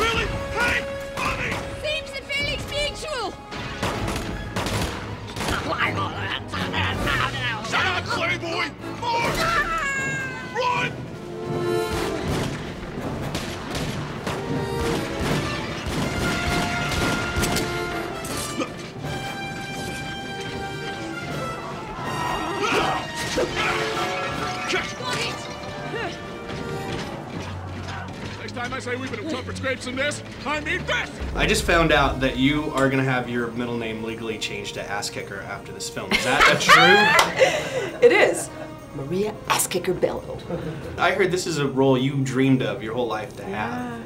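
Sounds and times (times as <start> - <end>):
action scene sound mix: 0.0 - 34.2
gunshots in quick succession: 3.5 - 5.8, 11.9 - 18.4.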